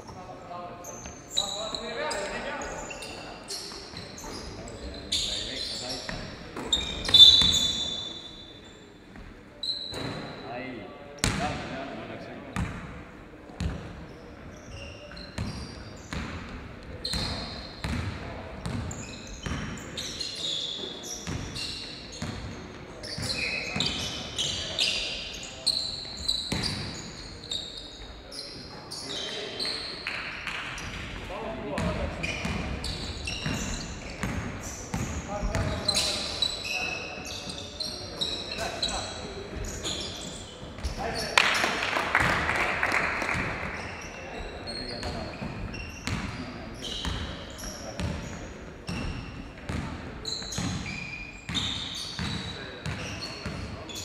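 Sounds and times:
sneakers squeaking on court: 0:00.8 - 0:10.4, 0:11.2 - 0:11.6, 0:12.6 - 0:12.9, 0:13.6 - 0:41.6, 0:43.3 - 0:54.0
basketball bouncing on gym floor: 0:13.6 - 0:13.9, 0:16.1 - 0:19.8, 0:33.4 - 0:36.1, 0:48.0 - 0:48.3, 0:48.9 - 0:50.9, 0:51.5 - 0:53.6.

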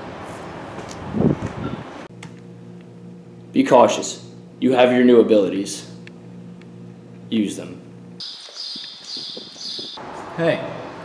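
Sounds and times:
bird chirping: 0:08.2 - 0:10.0.

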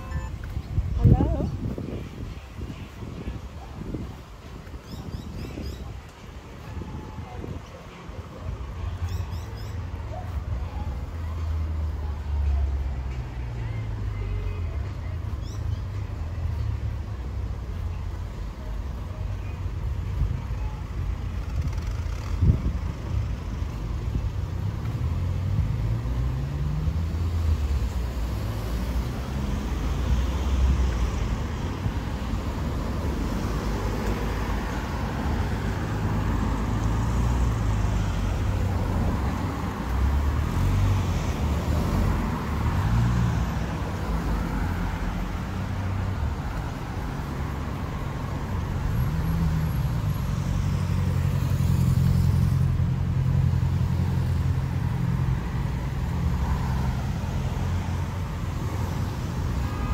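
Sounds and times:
cars driving past: 0:21.3 - 0:59.9.

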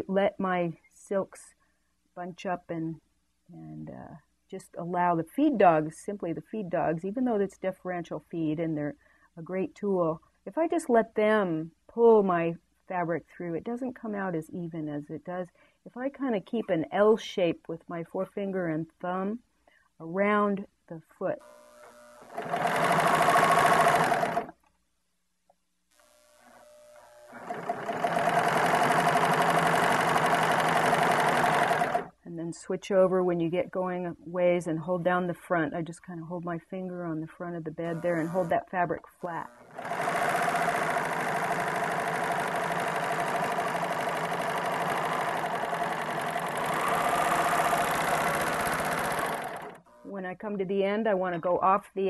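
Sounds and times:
serger sewing machine stitching: 0:21.4 - 0:24.6, 0:26.4 - 0:32.2, 0:37.8 - 0:38.6, 0:39.2 - 0:50.1.

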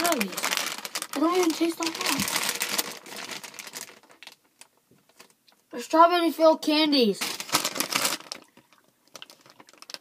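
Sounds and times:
plastic wrapper crinkling: 0:00.0 - 0:05.6, 0:07.1 - 0:10.0.

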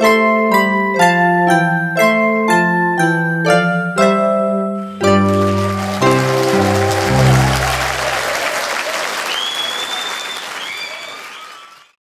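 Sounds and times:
song ending on low chords: 0:04.8 - 0:08.3
audience applauding: 0:05.0 - 0:12.0
high-pitched crowd calls: 0:05.3 - 0:11.9.

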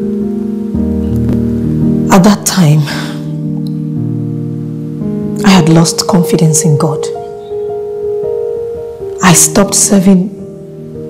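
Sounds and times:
soft held chords: 0:00.0 - 0:11.0
deep bass note: 0:00.9 - 0:02.0.

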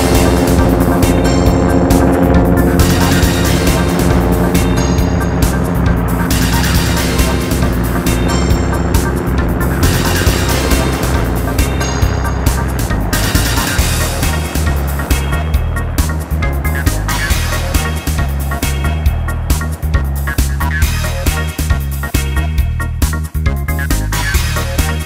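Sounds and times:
helicopter engine and rotor: 0:00.0 - 0:23.1
background music with steady beat: 0:00.0 - 0:25.0.

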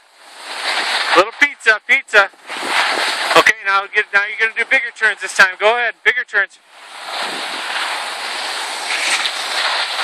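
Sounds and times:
skis sliding over packed snow: 0:00.0 - 0:10.0.

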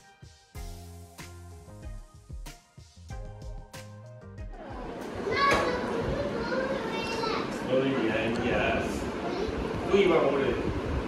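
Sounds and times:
background music: 0:00.0 - 0:05.5.

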